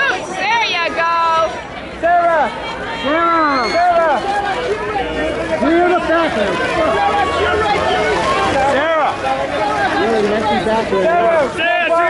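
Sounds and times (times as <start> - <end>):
crowd chatter: 0.0 - 12.0
photographers shouting: 0.0 - 12.0.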